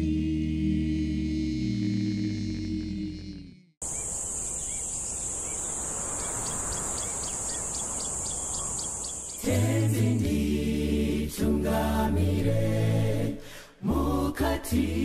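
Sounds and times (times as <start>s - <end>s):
a cappella choir singing hymn: 0.0s - 3.3s, 9.3s - 15.0s
choir singing: 0.0s - 3.3s, 9.3s - 15.0s
insects droning: 3.8s - 10.2s.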